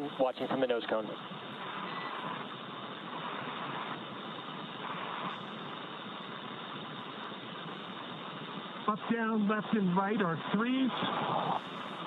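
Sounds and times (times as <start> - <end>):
radio loop hiss: 0.0 - 12.0.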